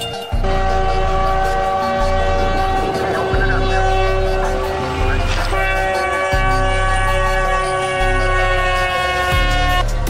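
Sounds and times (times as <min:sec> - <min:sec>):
background music with bass: 0:00.0 - 0:10.0
train horn blast: 0:00.3 - 0:10.0.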